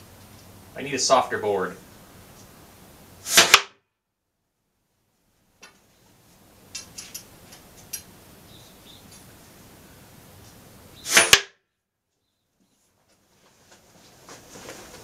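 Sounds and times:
dart smacking into wood: 3.3s - 3.8s, 11.1s - 11.6s.

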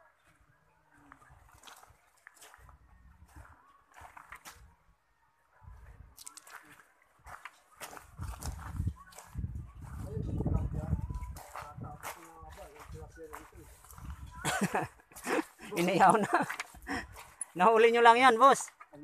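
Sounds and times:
footsteps on gravel: 1.1s - 4.6s, 6.2s - 18.0s.

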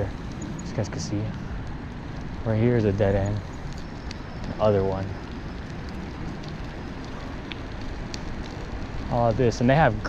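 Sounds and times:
faint ticks: 0.0s - 9.7s
tyres rolling on asphalt: 0.0s - 10.0s.

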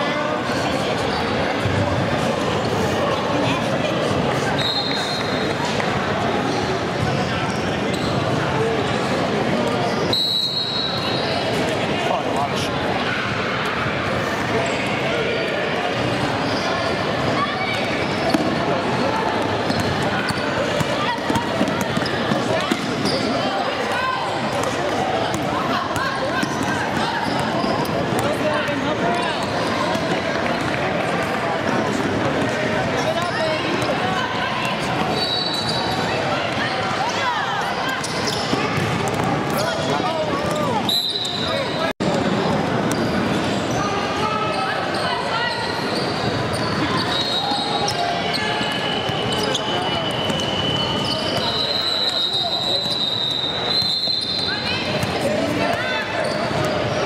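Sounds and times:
indistinct talk: 0.0s - 57.0s
referee whistle blasts: 10.1s - 11.2s, 48.6s - 54.6s.

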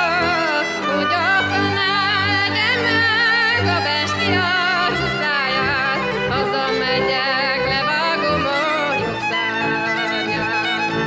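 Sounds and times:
fiddles playing: 0.0s - 11.0s
woman singing with vibrato: 0.0s - 11.0s.

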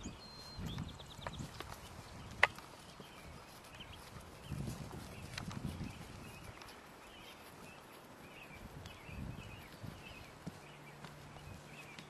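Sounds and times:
hoofbeats galloping on grass: 0.0s - 12.0s.

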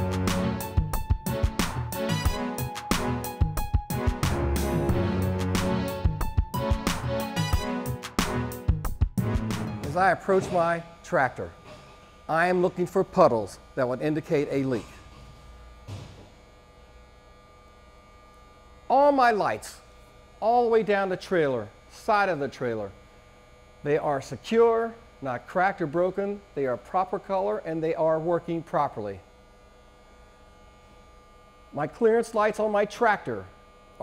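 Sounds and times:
electrical hum and buzz: 0.0s - 34.0s.

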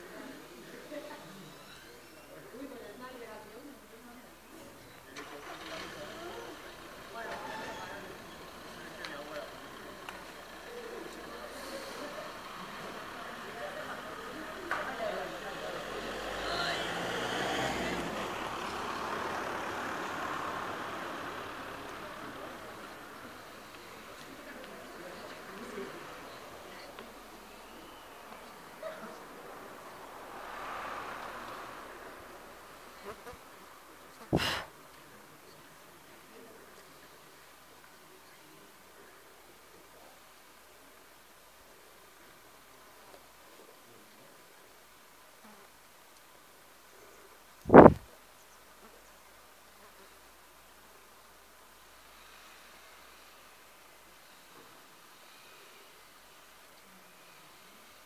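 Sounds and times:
people talking: 0.0s - 17.0s, 21.6s - 29.8s.

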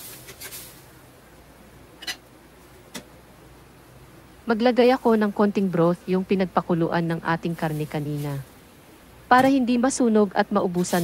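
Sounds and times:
pan simmering hiss: 0.0s - 11.0s.

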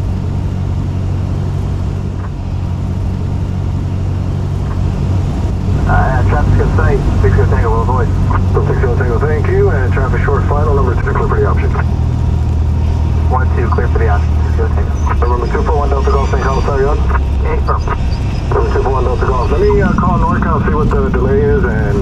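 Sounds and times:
plane engine drone in cabin: 0.0s - 22.0s
unclear voice: 5.8s - 11.9s, 13.3s - 22.0s.

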